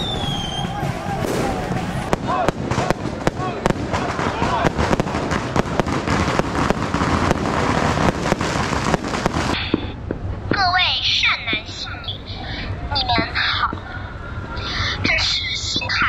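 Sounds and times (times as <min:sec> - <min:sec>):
firecrackers popping: 0:00.0 - 0:10.7
crowd voices: 0:00.0 - 0:16.0.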